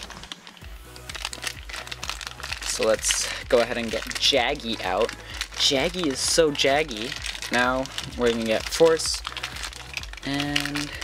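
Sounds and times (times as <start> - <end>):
faint background music: 0.0 - 11.0
plastic bags crinkling: 0.0 - 11.0.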